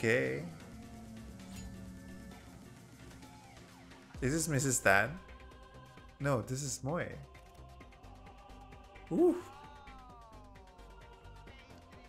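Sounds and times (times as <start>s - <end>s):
person exclaiming: 9.1s - 9.7s.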